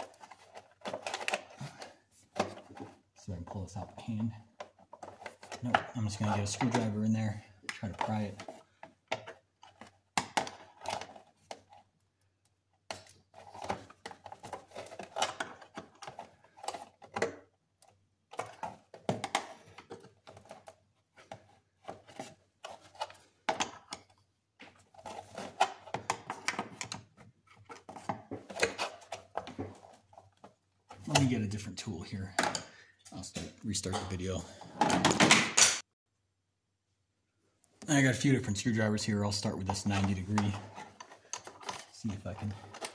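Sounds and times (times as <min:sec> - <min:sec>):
screwdriver prying and scraping: 0:00.0 - 0:03.0, 0:12.8 - 0:24.2, 0:39.6 - 0:42.9.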